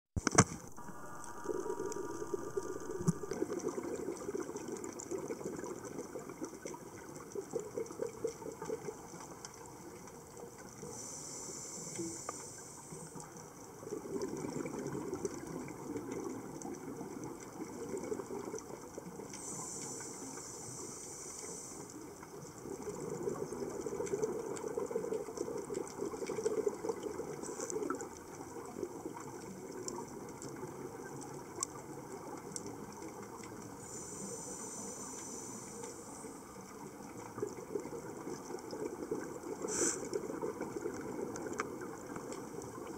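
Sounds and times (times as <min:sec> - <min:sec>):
exhaled bubbles bubbling underwater: 0:00.7 - 0:42.9
regulator hissing inhalations: 0:10.9 - 0:13.1, 0:19.4 - 0:22.1, 0:33.8 - 0:36.4, 0:39.6 - 0:40.2.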